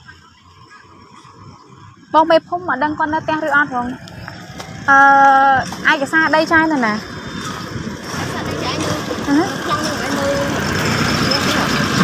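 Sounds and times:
people talking: 0.0 - 1.3, 2.1 - 4.0, 4.9 - 12.0
vehicle engine running: 0.0 - 12.0.

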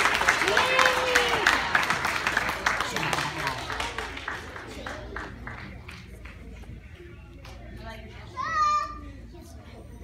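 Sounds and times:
background chatter: 0.0 - 10.0.

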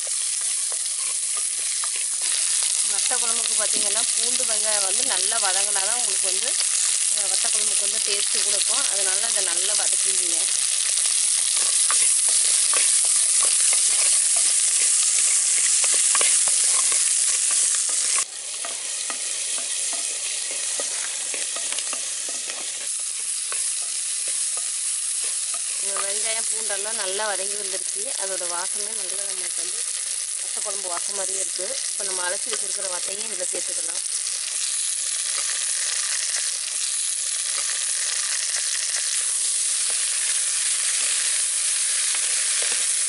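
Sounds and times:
frying sizzle with crackling: 0.0 - 43.0.

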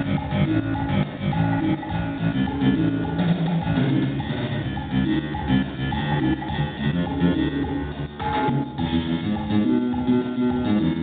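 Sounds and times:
drums keeping steady beat: 0.0 - 11.0
guitar: 0.0 - 11.0.

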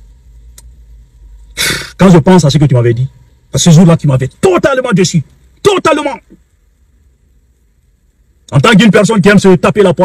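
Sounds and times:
faint click: 0.5 - 0.8
sharp breath drawn in: 1.6 - 2.0.

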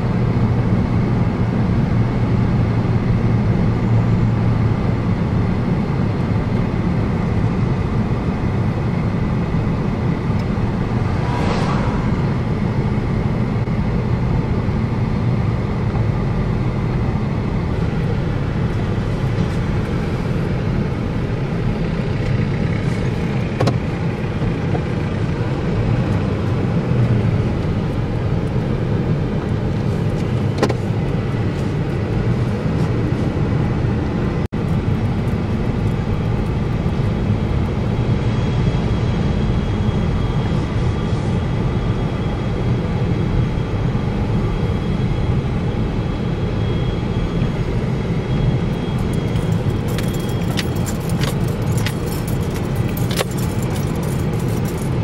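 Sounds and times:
car engine and tyres rumbling: 0.0 - 55.0
light clicks and rattles: 49.2 - 55.0.

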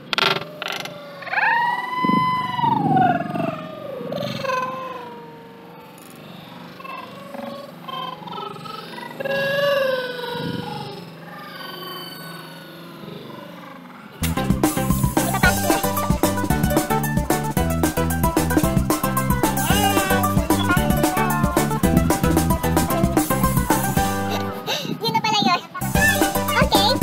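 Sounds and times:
animal cries gliding in pitch: 0.2 - 14.2, 19.0 - 24.0.

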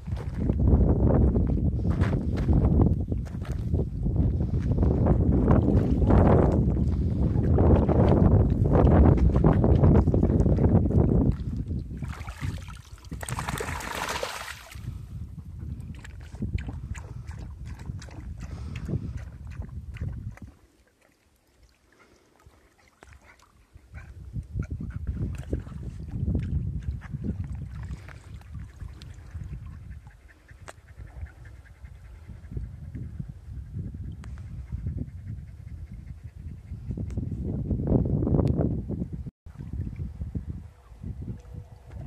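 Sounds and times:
wind rumble on microphone: 0.0 - 20.7, 22.5 - 42.0
water sloshing and splashing: 7.2 - 15.0, 19.1 - 23.8, 25.2 - 29.8.

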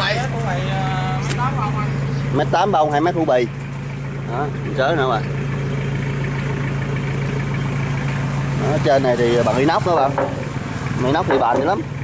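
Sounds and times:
tractor diesel engine idling: 0.0 - 12.0.

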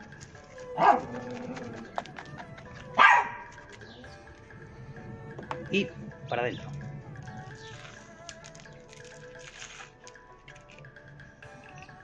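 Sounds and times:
faint background music: 0.0 - 12.0
dog barking: 0.8 - 1.2, 3.0 - 3.5.

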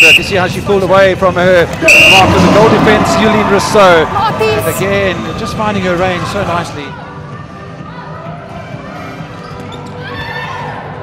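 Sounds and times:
hall noise: 0.0 - 0.3, 1.8 - 5.4.

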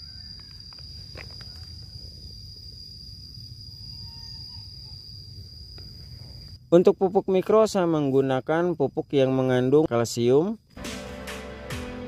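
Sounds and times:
insect high-pitched call: 0.0 - 10.8.

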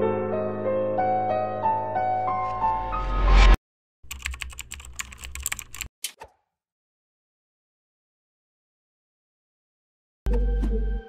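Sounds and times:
computer keyboard typing: 4.0 - 5.9.

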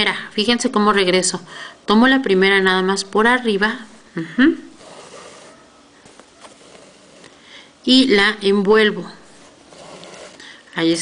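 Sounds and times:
thread rustling through fabric: 4.7 - 7.4, 9.3 - 10.6.

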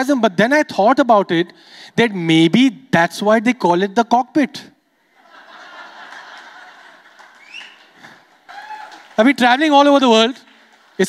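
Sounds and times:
audience laughing: 5.1 - 8.3.

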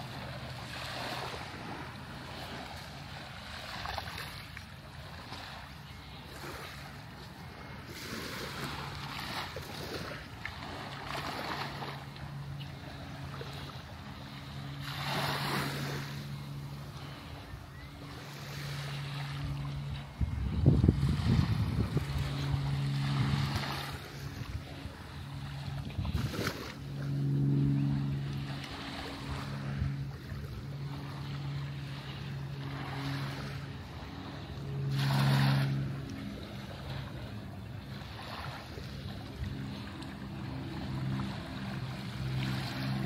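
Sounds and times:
low engine hum: 0.0 - 43.0
small waves lapping on sand: 0.0 - 43.0
wind gusts on microphone: 13.9 - 37.3.

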